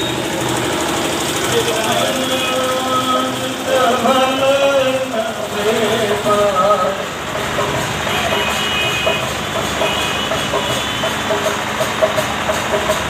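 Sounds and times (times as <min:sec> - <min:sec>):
crowd voices: 0:00.0 - 0:09.8
scooters passing: 0:00.0 - 0:12.4
truck engine idling: 0:00.0 - 0:13.0
chanting from a loudspeaker: 0:01.7 - 0:07.3.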